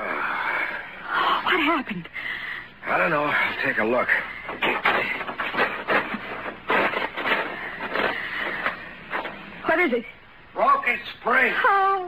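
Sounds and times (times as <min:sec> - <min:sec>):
crunching knocks and scrapes: 0:04.5 - 0:09.4.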